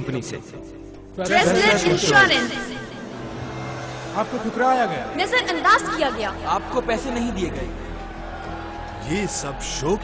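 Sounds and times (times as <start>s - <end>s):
person speaking: 1.2s - 2.8s.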